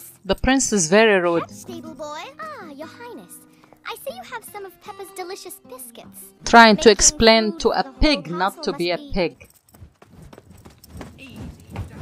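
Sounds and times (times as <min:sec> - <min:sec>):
cartoon running footsteps: 0:09.4 - 0:12.0.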